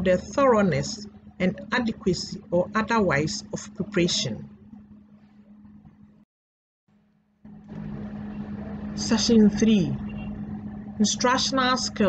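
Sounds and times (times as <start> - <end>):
low hum: 7.5 - 12.0.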